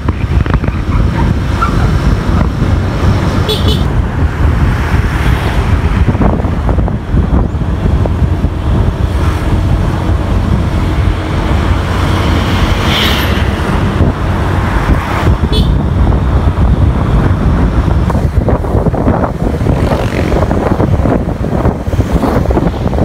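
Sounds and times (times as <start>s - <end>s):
vehicle engine and road noise: 0.0s - 23.0s.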